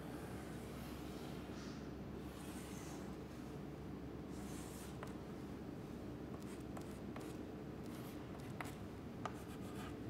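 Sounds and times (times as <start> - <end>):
low room hum: 0.0 - 10.0
chalk tapping: 6.3 - 10.0
chalk scratching on chalkboard: 6.4 - 10.0.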